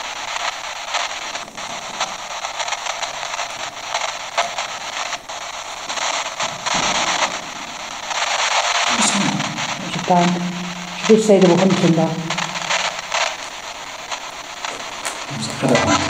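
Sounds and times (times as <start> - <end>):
radio static hiss: 0.0 - 16.0.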